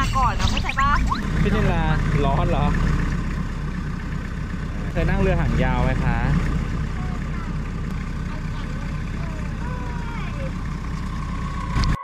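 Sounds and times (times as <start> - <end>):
boat engine low rumble: 0.0 - 12.0.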